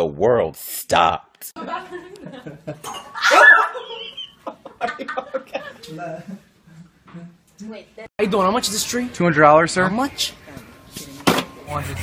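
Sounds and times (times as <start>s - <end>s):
person shrieking: 3.2s - 3.8s.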